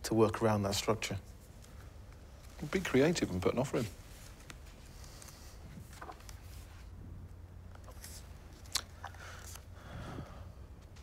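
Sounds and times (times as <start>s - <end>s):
steady low hum: 0.0s - 11.0s
small clicks and rustles: 4.0s - 6.9s.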